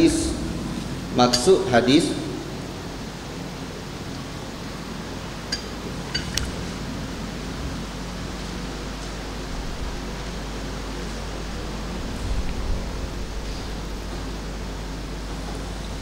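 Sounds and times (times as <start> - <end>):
low electrical hum: 0.0 - 16.0
microphone hiss: 0.0 - 16.0.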